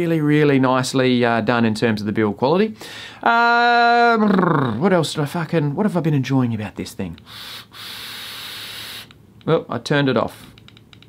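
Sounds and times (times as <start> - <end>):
air drawn through atomizer hissing: 7.2 - 9.2.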